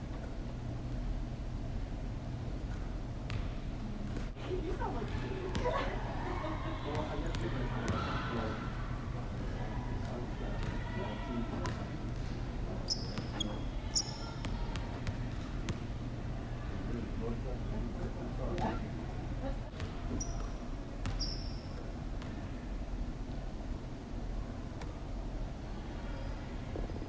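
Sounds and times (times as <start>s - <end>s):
steady low hum: 0.0s - 27.0s
sneakers squeaking: 2.6s - 8.7s, 10.0s - 16.0s, 18.6s - 22.5s
faint voices: 4.4s - 20.2s.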